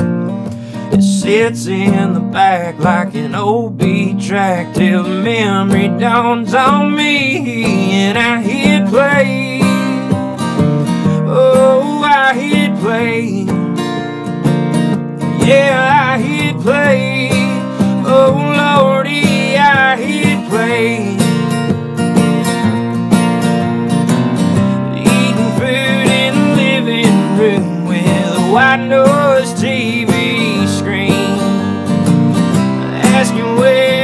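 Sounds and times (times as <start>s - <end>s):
man singing: 0.0s - 14.2s, 15.2s - 21.7s, 24.6s - 31.9s, 32.6s - 34.0s
acoustic guitar strumming: 0.0s - 34.0s.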